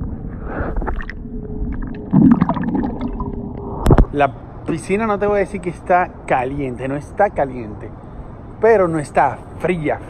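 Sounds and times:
underwater rumbling and gurgling: 0:00.0 - 0:04.1
faint steady hum: 0:00.0 - 0:10.0
water splash: 0:00.7 - 0:04.1.

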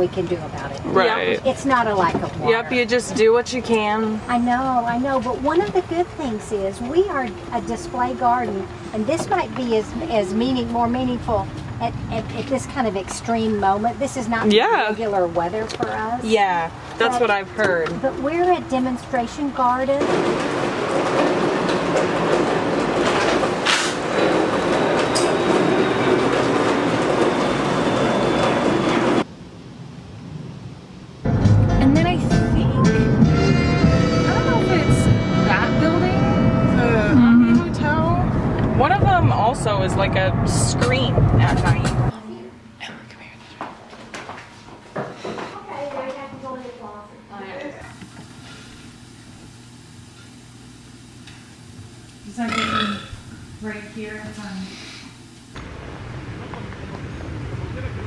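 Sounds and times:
loud steady rushing noise: 0:33.7 - 0:42.1, 0:55.5 - 0:58.0
low mechanical hum: 0:45.5 - 0:58.0.

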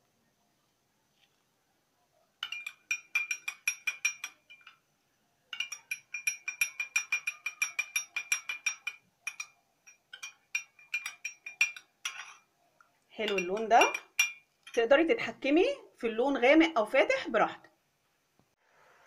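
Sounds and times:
spoon clinking in a glass: 0:02.4 - 0:04.8, 0:05.5 - 0:12.5, 0:13.2 - 0:14.9.

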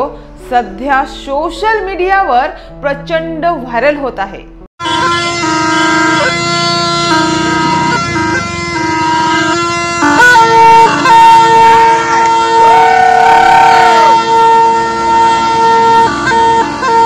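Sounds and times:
gourd wind instrument melody: 0:04.8 - 0:17.0.

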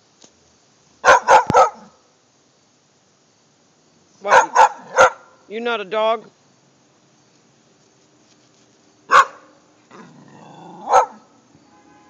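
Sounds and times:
dog barking: 0:01.0 - 0:02.0, 0:04.3 - 0:05.4, 0:09.1 - 0:09.5, 0:10.8 - 0:11.3.

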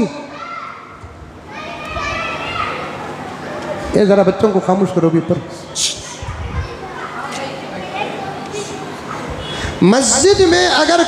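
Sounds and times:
babble of children's voices: 0:00.0 - 0:03.9, 0:05.6 - 0:09.9.

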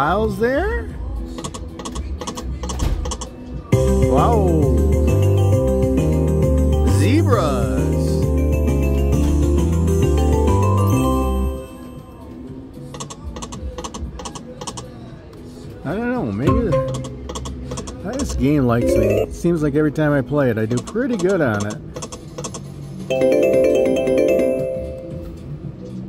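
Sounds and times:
slot machine reel clicks: 0:16.5 - 0:17.6.

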